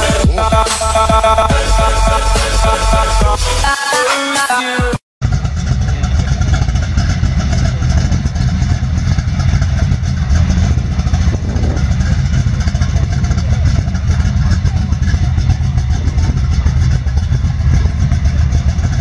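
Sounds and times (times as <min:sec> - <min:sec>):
car engine idling: 0:00.0 - 0:03.8, 0:05.2 - 0:19.0.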